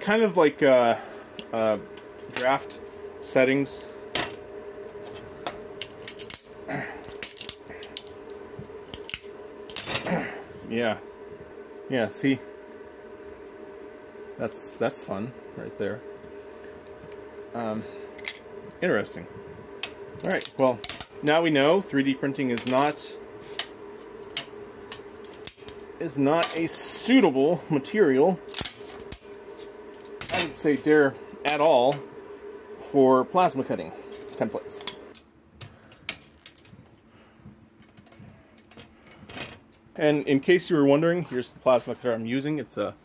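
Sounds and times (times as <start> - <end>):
steady background hum: 0.0 - 43.0.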